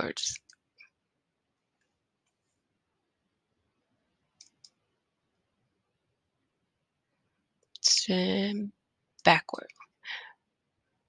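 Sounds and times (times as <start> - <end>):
computer mouse clicks: 4.4 - 4.8.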